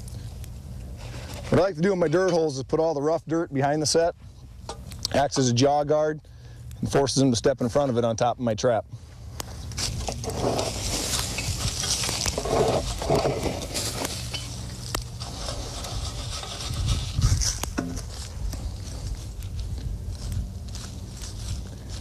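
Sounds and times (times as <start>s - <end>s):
hands scraping soil: 9.8s - 18.1s.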